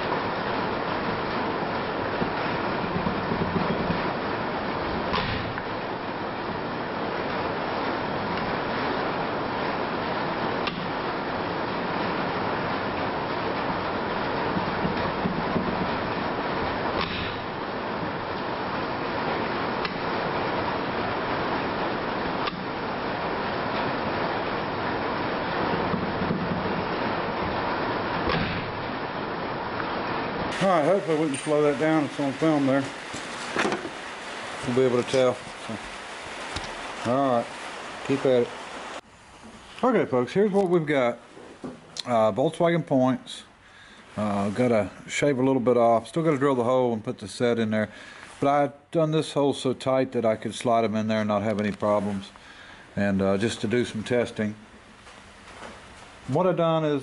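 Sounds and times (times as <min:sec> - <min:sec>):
rain on a roof: 0:00.0 - 0:57.0
magneto coupling clicks: 0:17.0 - 0:17.5, 0:22.4 - 0:22.7.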